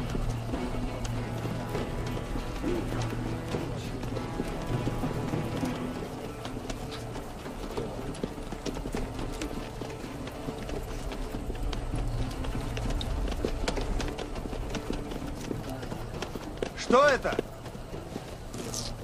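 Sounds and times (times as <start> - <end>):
film score music: 0.0 - 19.0
horse hooves clip-clopping: 0.0 - 19.0.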